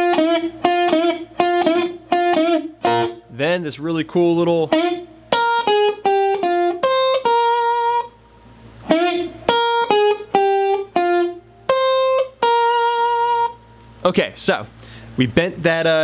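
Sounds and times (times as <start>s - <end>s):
electric guitar lead lick: 0.0s - 14.0s.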